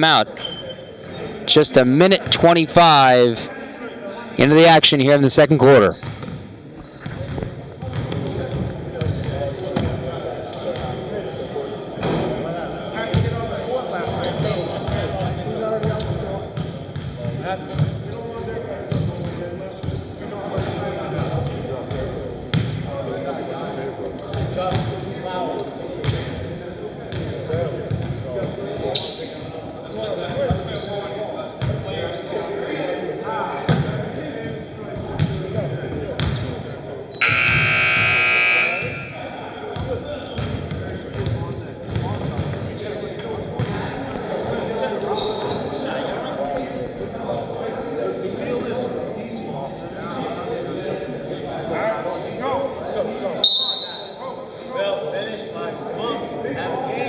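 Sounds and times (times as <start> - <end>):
players' voices echoing: 0.0 - 0.4, 1.0 - 6.0, 37.2 - 42.8
scoreboard buzzer: 37.2 - 39.3.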